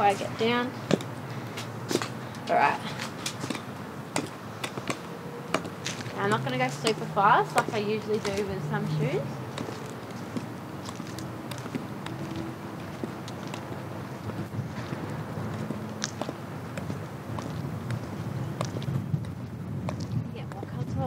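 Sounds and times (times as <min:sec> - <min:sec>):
high heels clicking on concrete: 0:00.0 - 0:21.0.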